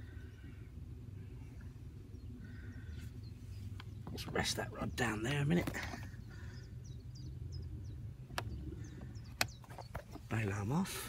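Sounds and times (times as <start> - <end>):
low steady hum: 0.0 - 11.0
small birds chirping: 0.0 - 11.0.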